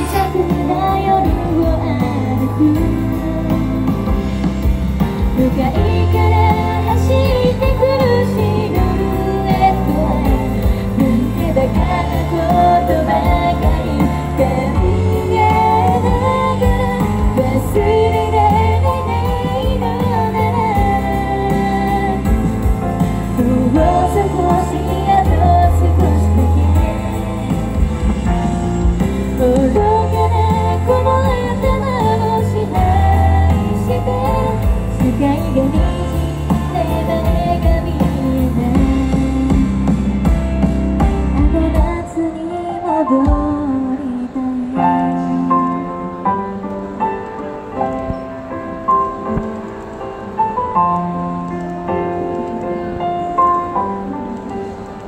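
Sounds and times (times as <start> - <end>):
loud instrumental accompaniment: 0.0 - 44.0
pop backing music with heavy bass: 0.0 - 48.2
woman singing into microphone: 0.0 - 48.4, 51.5 - 55.0.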